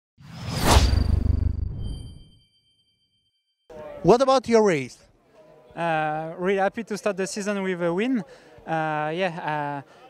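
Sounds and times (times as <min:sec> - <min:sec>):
whoosh: 0:00.2 - 0:02.4
faint high ringing tone: 0:01.7 - 0:03.7.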